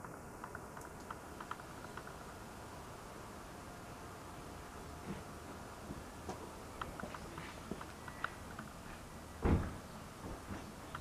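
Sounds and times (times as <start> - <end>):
dull thump: 9.4 - 10.6.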